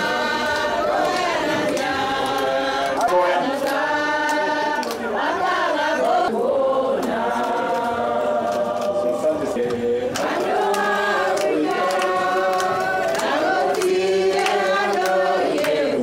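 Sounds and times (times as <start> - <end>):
group singing a hymn: 0.0 - 16.0.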